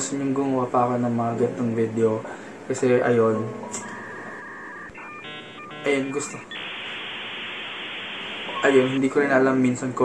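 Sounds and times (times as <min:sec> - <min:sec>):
buzzy electronic chord: 0:03.6 - 0:09.0
electronic telephone beeps: 0:03.7 - 0:09.0.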